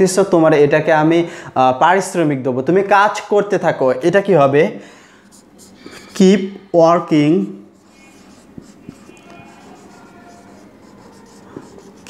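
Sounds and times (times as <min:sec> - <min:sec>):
marker writing on whiteboard: 0:05.3 - 0:06.2, 0:07.6 - 0:12.0.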